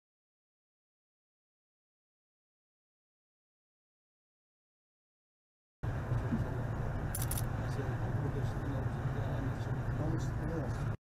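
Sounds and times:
jingling click: 7.2s - 7.5s.

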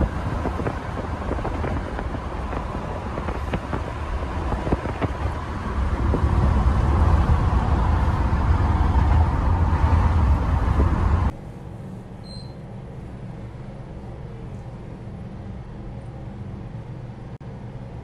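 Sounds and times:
car road noise rumble: 0.0s - 18.0s.

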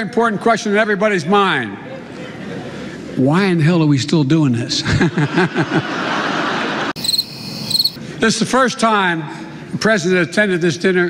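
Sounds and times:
crowd laughing: 1.8s - 3.2s, 4.8s - 7.0s
crickets chirping: 7.0s - 8.0s.

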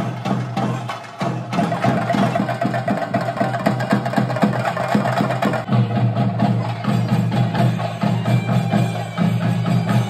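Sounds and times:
drums beaten with sticks: 0.0s - 10.0s.

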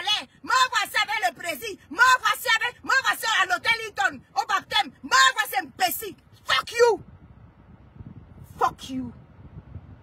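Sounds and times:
woman speaking: 0.0s - 7.0s, 8.5s - 9.2s
low steady rumble: 0.0s - 10.0s.

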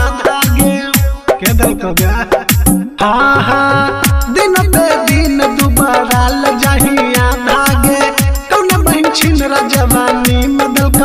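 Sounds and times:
held melody line: 0.0s - 11.0s.

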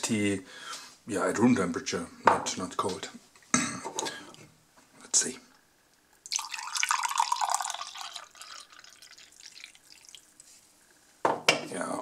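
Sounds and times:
liquid dripping: 6.1s - 10.5s
liquid pouring into a glass: 6.2s - 10.4s.

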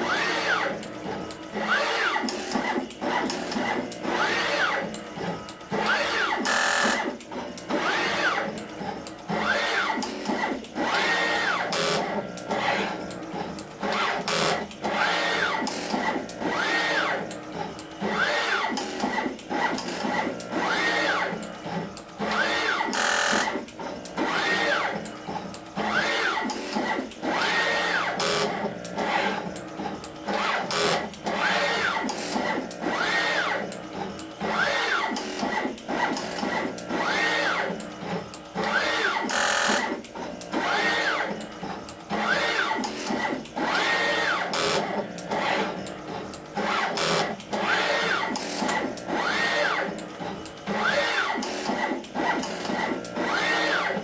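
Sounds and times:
rapid clicks from machine heads: 0.0s - 54.0s
stepper motors whining: 0.0s - 54.0s.

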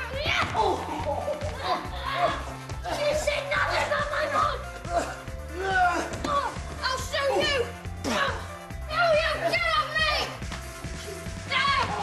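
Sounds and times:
boys yelling: 0.0s - 10.4s, 11.3s - 12.0s
background music: 0.0s - 12.0s.

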